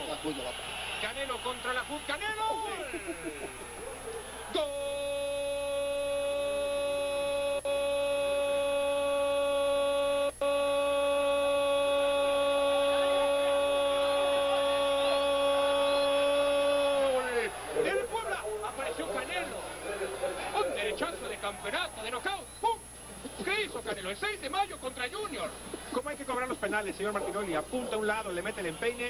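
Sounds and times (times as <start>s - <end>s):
commentator shouting goal call: 12.5s - 19.6s.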